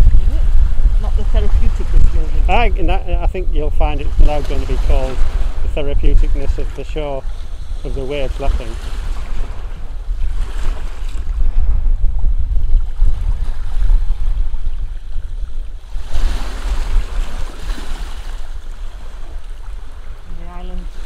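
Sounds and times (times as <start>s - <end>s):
wind rumble on microphone: 0.0s - 21.0s
small waves lapping on sand: 3.6s - 11.8s, 12.7s - 21.0s.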